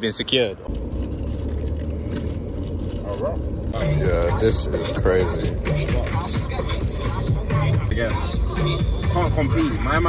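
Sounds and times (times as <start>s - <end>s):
car cabin rumble: 0.6s - 10.0s.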